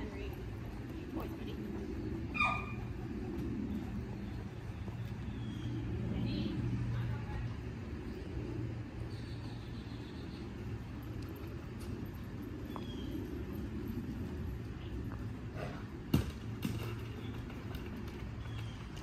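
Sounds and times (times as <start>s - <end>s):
low hum: 0.0s - 19.0s
low outdoor rumble: 0.0s - 19.0s.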